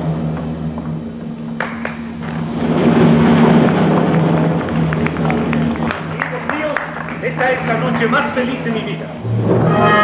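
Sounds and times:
audience applauding: 1.6s - 9.1s.

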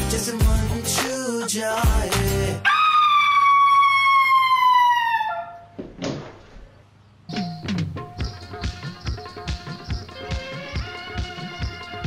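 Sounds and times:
woman screaming: 2.6s - 5.7s.

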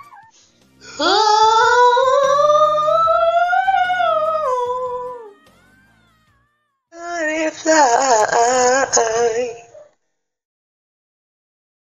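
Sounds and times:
woman singing a long high note: 0.8s - 5.4s, 7.0s - 9.8s.

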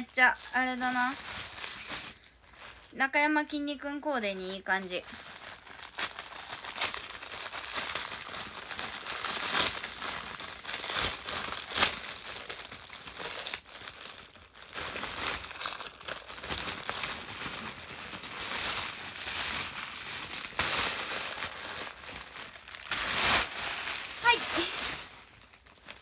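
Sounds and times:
paper wrapping rustling and crinkling: 0.0s - 3.6s, 4.2s - 26.0s.

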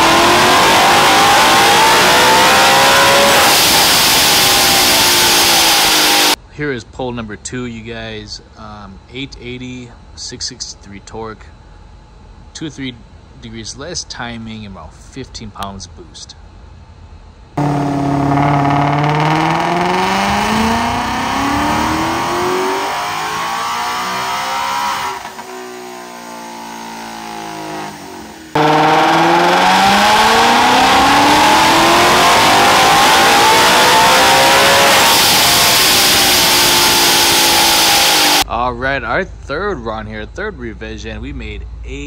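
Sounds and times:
car engine revving at full throttle: 0.0s - 6.4s, 17.6s - 38.4s.

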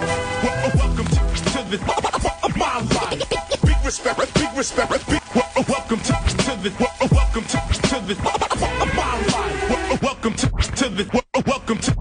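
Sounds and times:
turntable scratching: 0.0s - 12.0s
rapping over a beat: 0.4s - 12.0s.

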